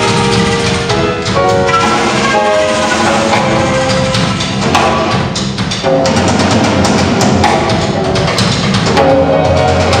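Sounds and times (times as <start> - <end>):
drum kit: 0.0 - 10.0
electric bass: 0.0 - 10.0
stage piano: 0.0 - 10.0.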